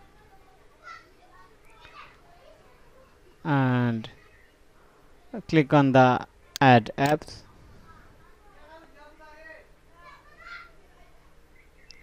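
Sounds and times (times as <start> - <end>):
faint indistinct voices: 0.0 - 12.0
low room noise: 0.0 - 12.0.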